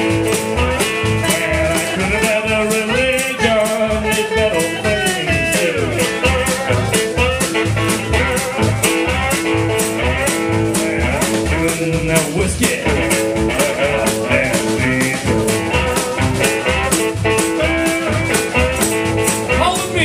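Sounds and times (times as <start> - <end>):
blues guitar: 0.0 - 20.0
drum kit steady beat: 0.0 - 20.0
upright double bass: 0.0 - 20.0.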